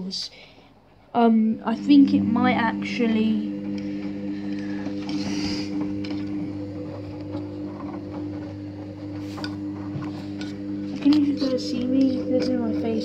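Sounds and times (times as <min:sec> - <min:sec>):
washing machine humming: 0:00.0 - 0:13.0.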